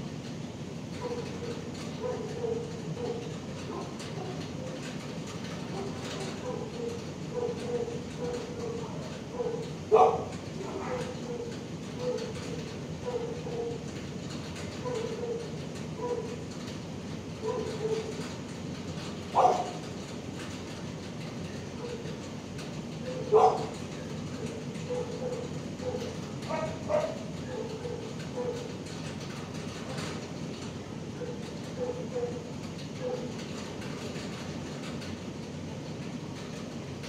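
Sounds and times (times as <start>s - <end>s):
steady background hum: 0.0s - 37.0s
dogs barking: 1.0s - 4.9s, 5.6s - 13.9s, 14.8s - 16.4s, 17.4s - 18.2s, 19.3s - 19.8s, 21.8s - 22.2s, 23.0s - 23.8s, 24.4s - 28.8s, 31.2s - 33.4s.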